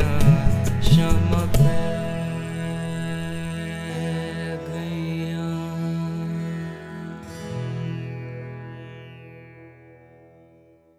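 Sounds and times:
acoustic guitar playing: 0.0s - 10.9s
harmonium sustained chord: 0.0s - 10.9s.

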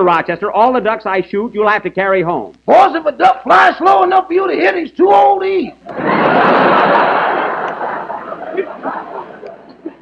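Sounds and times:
studio audience laughing: 5.8s - 10.0s.

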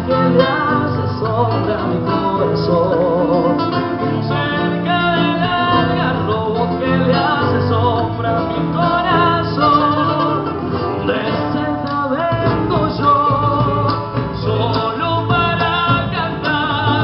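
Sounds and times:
guitar accompaniment: 0.0s - 17.0s
man singing into microphone: 0.0s - 17.0s.

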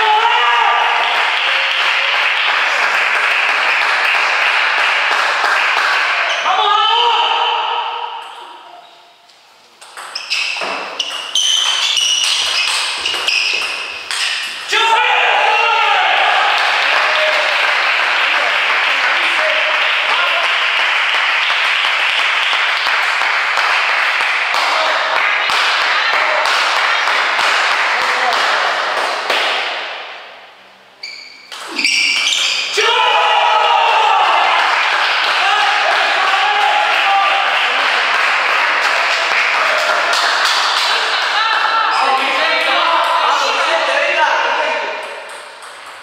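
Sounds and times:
player shouting: 0.0s - 2.1s, 6.3s - 8.8s, 14.6s - 17.6s, 32.7s - 37.8s.

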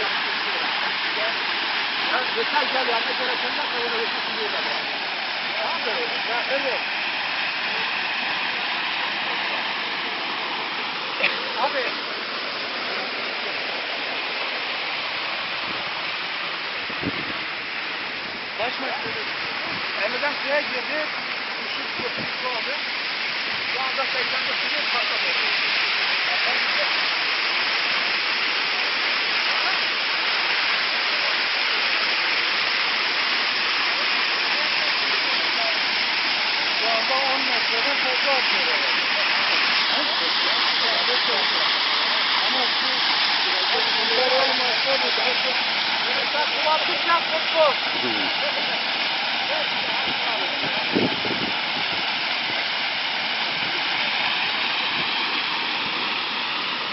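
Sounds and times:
water gushing from borehole: 0.0s - 56.9s.

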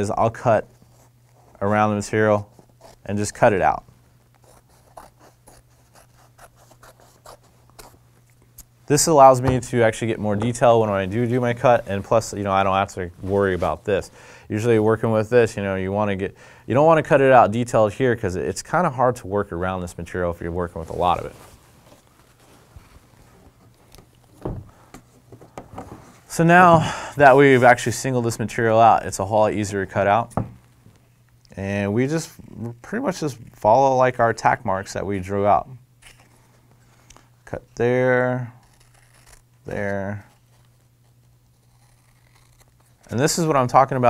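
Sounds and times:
soft thump: 24.4s - 24.7s.

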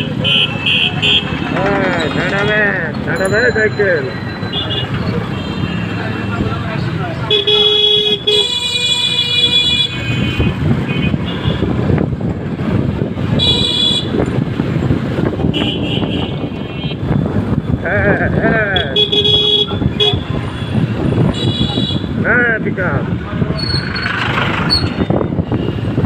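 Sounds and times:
horns tooting: 0.0s - 2.9s, 3.6s - 6.5s, 18.2s - 22.2s
motorcycle engine and road noise: 0.0s - 26.0s.

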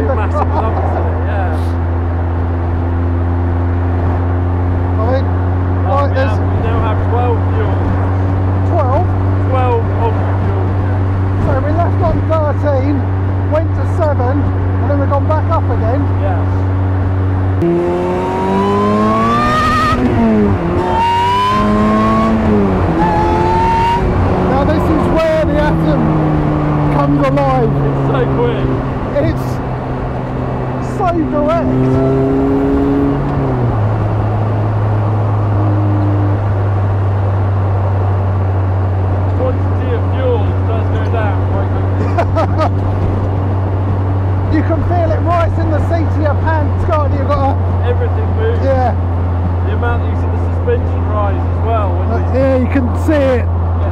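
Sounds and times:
car engine accelerating: 0.0s - 53.9s
engine drone at cruising speed: 0.0s - 53.9s.

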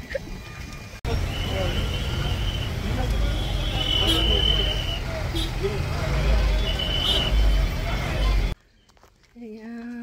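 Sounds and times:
vehicle engines rumbling: 0.2s - 8.6s.

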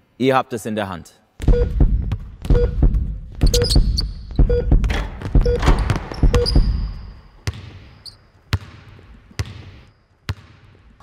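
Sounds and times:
basketball dribbling on hardwood: 1.4s - 7.9s.

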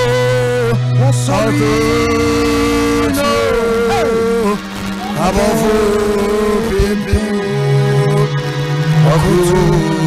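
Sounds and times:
man singing long notes: 0.0s - 10.0s.

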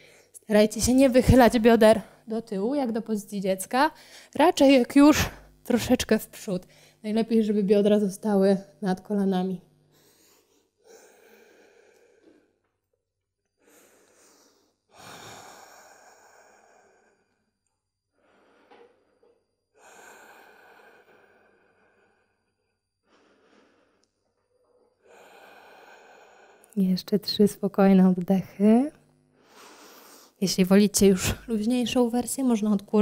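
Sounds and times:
woman breathing slowly: 0.0s - 0.4s, 4.0s - 4.4s, 6.7s - 7.0s, 9.9s - 12.7s, 13.5s - 26.8s, 29.3s - 30.4s.

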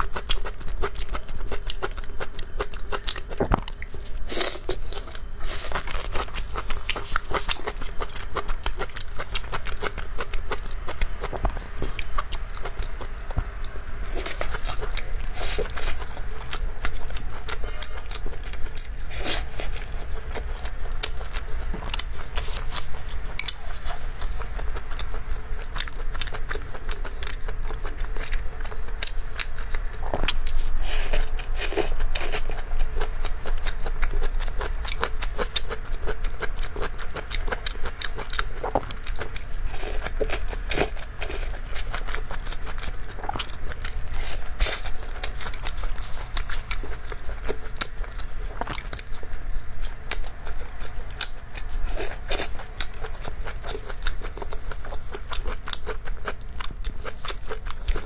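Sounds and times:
close-miked biting and chewing: 0.0s - 58.0s
steady low hum: 0.0s - 58.0s.

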